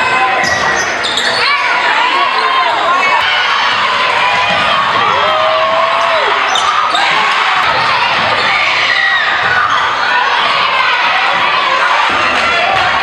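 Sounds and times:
spectators voices and shouting: 0.0s - 13.0s.

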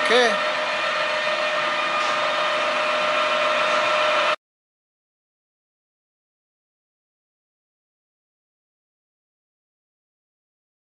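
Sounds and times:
mechanical hum with hiss: 0.0s - 4.4s
steady tones: 0.0s - 4.4s.

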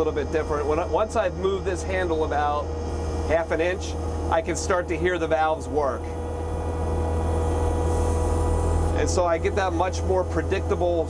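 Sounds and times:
diesel engine running: 0.0s - 11.0s
hydraulic valves working: 0.0s - 11.0s.

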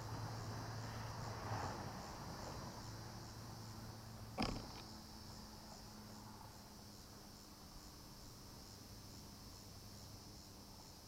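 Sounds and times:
high-pitched insect buzz: 4.4s - 5.4s.

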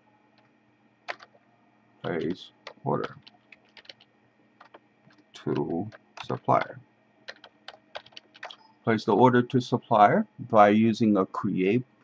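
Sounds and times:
keyboard key clicks: 4.6s - 6.7s, 7.3s - 8.6s.

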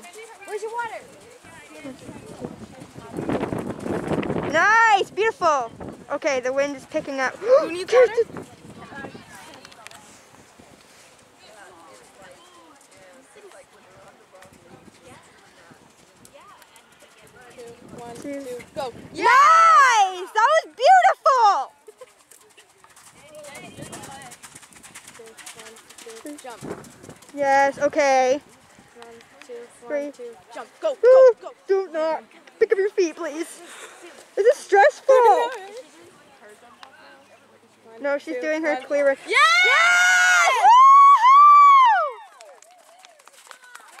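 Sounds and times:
horse hoofbeats cantering: 0.0s - 5.4s, 11.9s - 18.9s, 21.4s - 30.8s, 42.4s - 44.0s
high-pitched whoop: 39.3s - 42.4s
spectators whooping: 39.3s - 42.5s.

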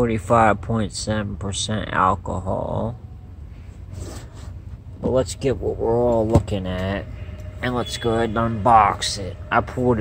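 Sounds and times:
low hum: 2.3s - 10.0s.

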